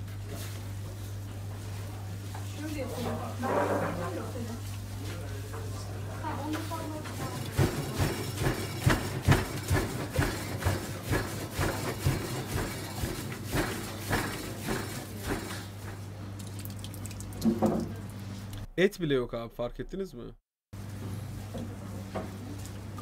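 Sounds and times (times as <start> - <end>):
wet squelching and slapping: 16.4 - 17.5.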